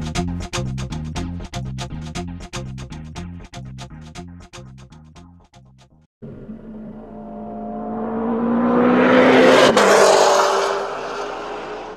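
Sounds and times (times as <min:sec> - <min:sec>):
car passing at speed: 0:06.3 - 0:11.9.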